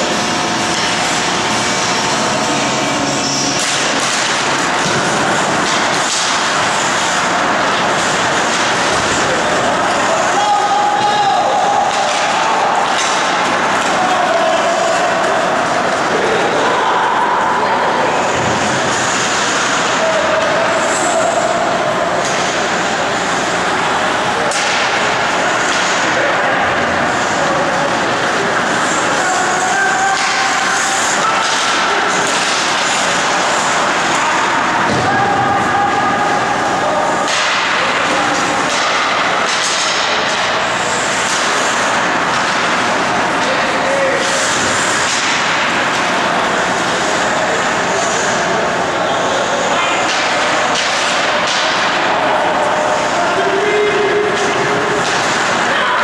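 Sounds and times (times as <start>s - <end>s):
indistinct voices: 0.0s - 56.0s
hockey sticks and puck knocks: 3.5s - 10.4s, 11.0s - 16.3s, 24.4s - 27.4s, 29.9s - 35.6s, 36.3s - 47.0s, 49.8s - 53.2s, 53.9s - 56.0s.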